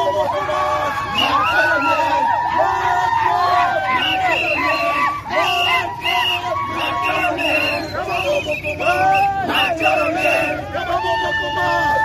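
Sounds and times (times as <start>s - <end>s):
crowd shouting and chanting: 0.0s - 12.0s.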